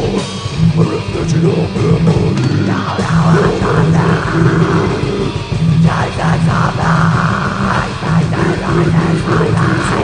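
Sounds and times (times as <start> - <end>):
distorted electric guitars: 0.0 - 10.0
drums: 0.0 - 10.0.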